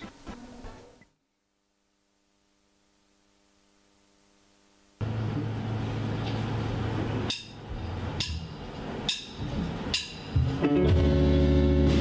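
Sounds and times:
low amplifier hum: 0:00.0 - 0:12.0.

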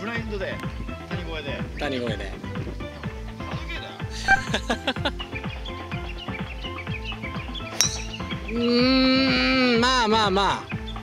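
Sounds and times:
background music with steady beat: 0:00.0 - 0:11.0
golf club striking ball: 0:07.7 - 0:08.6.

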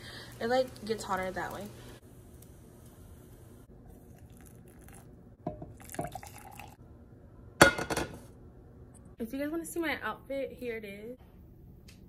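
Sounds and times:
hot water pouring into mug: 0:03.8 - 0:06.8
pan and mug clinking: 0:07.6 - 0:08.2.

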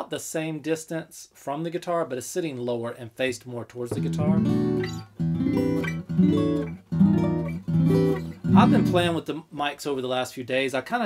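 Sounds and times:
acoustic guitar strumming chords: 0:03.9 - 0:09.2.

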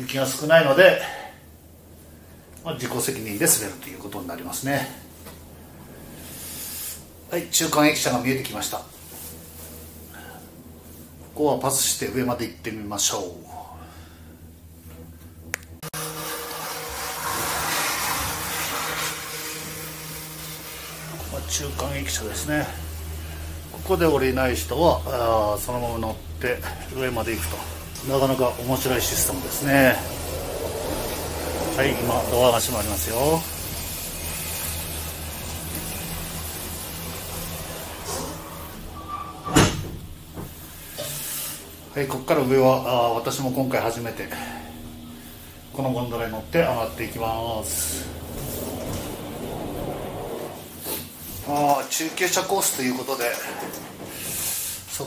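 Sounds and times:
lift station machinery rumble: 0:00.0 - 0:55.0
automatic doors shutting with knock: 0:21.1 - 0:41.0, 0:44.4 - 0:51.6, 0:52.2 - 0:54.6.

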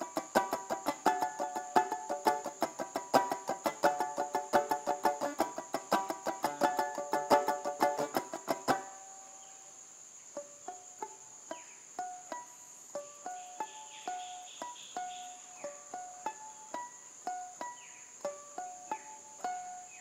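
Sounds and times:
banjo picked slowly: 0:00.0 - 0:09.7, 0:10.3 - 0:20.0.

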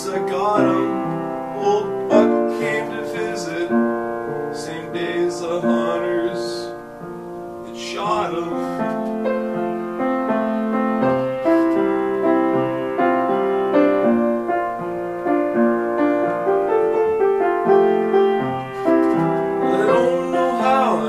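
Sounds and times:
man singing: 0:00.0 - 0:06.8, 0:07.6 - 0:09.0, 0:19.6 - 0:21.0
upright piano playing: 0:00.0 - 0:21.0.

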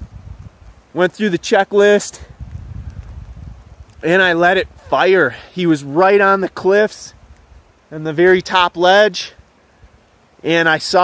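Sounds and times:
wind buffeting microphone: 0:00.0 - 0:00.9, 0:02.2 - 0:05.2
faint outdoor hiss: 0:00.0 - 0:11.0.

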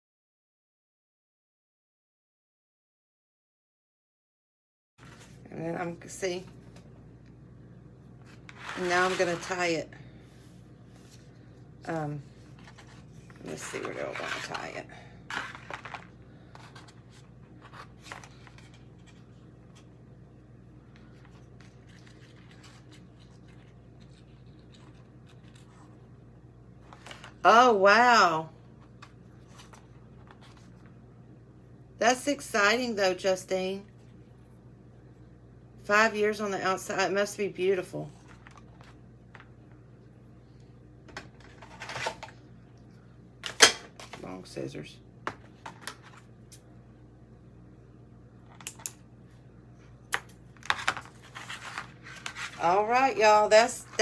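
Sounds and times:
rustling and light scraping: 0:05.0 - 0:05.5, 0:08.2 - 0:11.6, 0:12.2 - 0:19.9, 0:50.7 - 0:52.8.

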